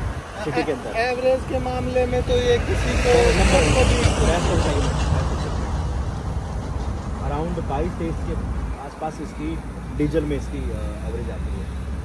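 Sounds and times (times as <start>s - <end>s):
dump truck engine rumble: 0.0s - 12.0s
tyre and road noise: 0.0s - 12.0s.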